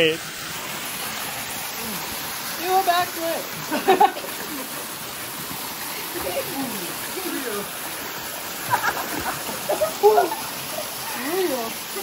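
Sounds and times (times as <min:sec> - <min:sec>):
waterfall rushing into pool: 0:00.0 - 0:12.0.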